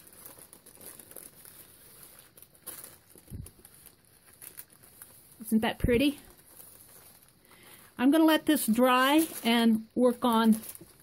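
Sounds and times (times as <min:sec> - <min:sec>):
plastic and paper rustling: 0:00.0 - 0:11.0.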